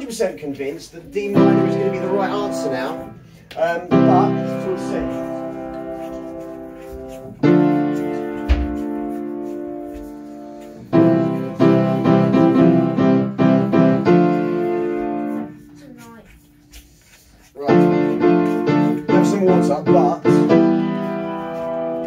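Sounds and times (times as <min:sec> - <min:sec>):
piano chords: 0:01.1 - 0:15.7, 0:17.6 - 0:22.0.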